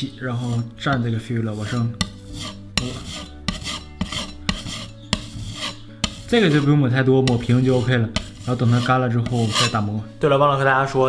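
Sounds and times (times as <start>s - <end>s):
putty knife scraping plaster wall: 0.3s - 10.0s.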